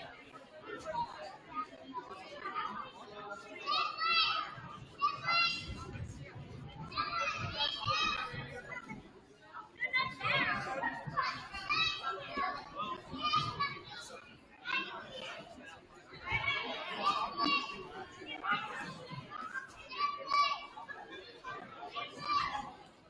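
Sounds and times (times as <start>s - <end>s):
murmur of people talking: 0.0s - 23.0s
children shouting: 3.6s - 5.8s, 16.2s - 18.0s.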